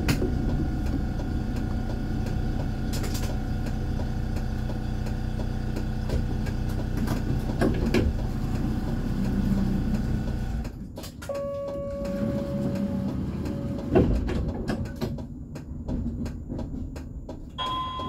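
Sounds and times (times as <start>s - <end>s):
tram electrical hum with tones: 0.0s - 18.0s.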